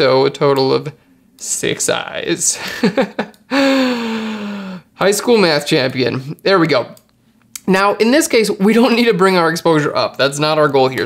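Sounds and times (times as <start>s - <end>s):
man chuckling: 2.5s - 4.5s.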